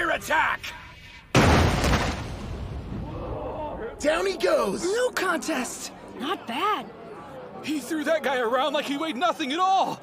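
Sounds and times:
heavy boom: 1.3s - 3.3s.

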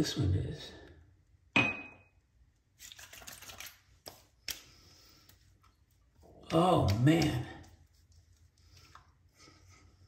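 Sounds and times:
bottle and cap rattling: 2.8s - 3.8s.

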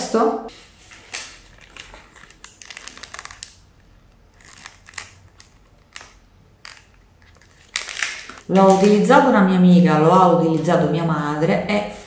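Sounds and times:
wrapper crinkling: 0.8s - 9.1s.

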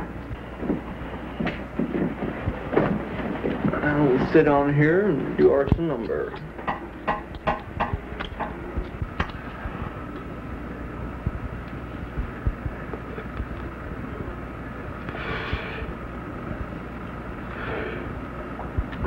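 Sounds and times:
film soundtrack hum and hiss: 0.0s - 19.0s.

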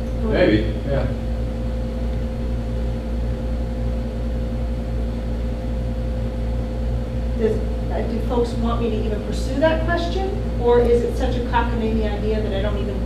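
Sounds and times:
air conditioner humming: 0.0s - 13.0s.

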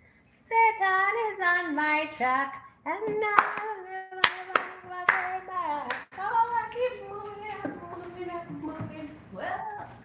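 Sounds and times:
hand claps: 3.2s - 6.1s.

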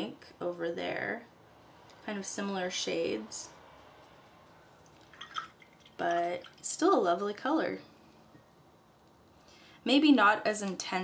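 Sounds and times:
water splashing and dripping: 5.0s - 6.8s.

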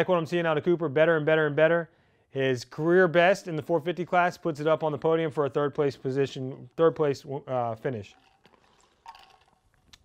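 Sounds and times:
person sipping: 8.1s - 10.0s.

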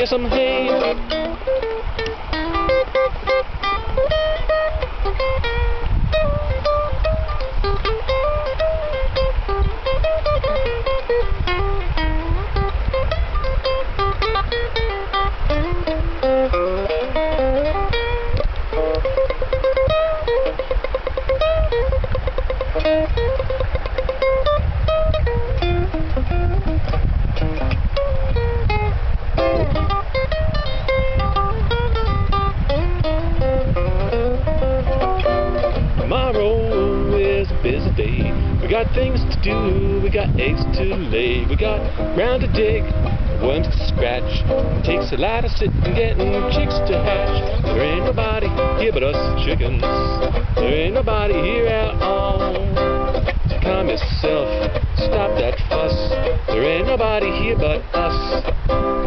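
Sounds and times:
nylon-string acoustic guitar solo: 0.0s - 59.0s.

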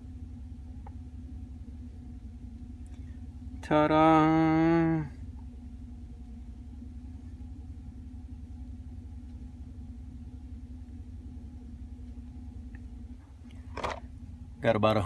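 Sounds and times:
truck engine idling: 0.0s - 15.0s.

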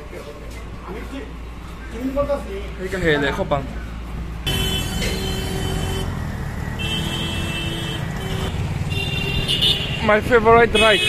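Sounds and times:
engine and road rumble: 0.0s - 11.0s
vehicle horns: 4.4s - 11.0s.

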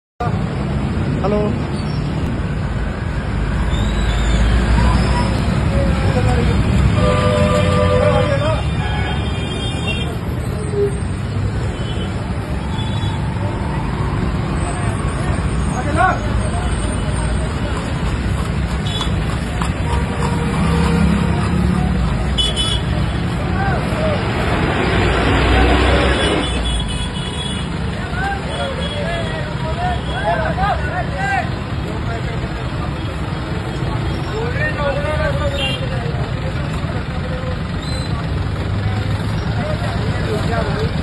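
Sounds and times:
traffic engines running: 0.2s - 41.0s
people talking: 4.6s - 9.0s, 27.9s - 41.0s.

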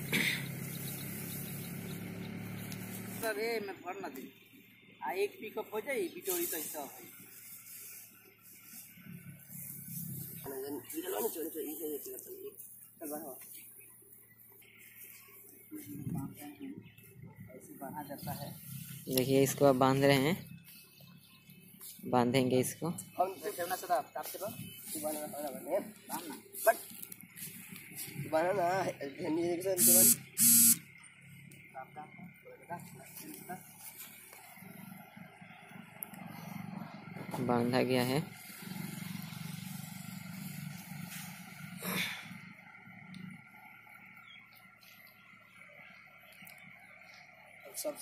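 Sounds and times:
people talking indistinctly: 5.0s - 7.2s, 10.4s - 13.8s, 15.7s - 20.5s, 21.9s - 30.2s.

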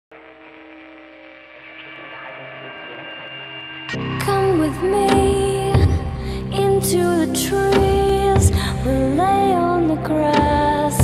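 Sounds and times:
sustained tonal drone: 0.1s - 8.3s.

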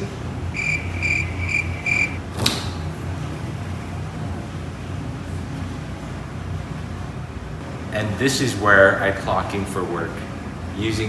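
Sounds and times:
steady low hum: 0.0s - 11.0s
short high-pitched beeps: 0.6s - 2.2s.

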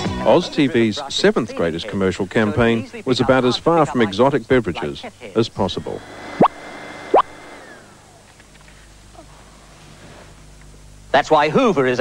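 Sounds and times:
rising bloop sound effects: 6.4s - 7.4s.

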